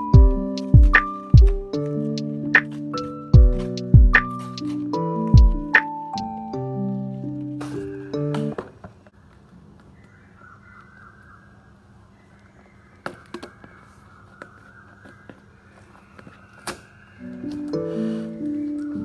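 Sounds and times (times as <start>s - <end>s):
soft background music: 0.0s - 8.7s, 14.7s - 19.0s.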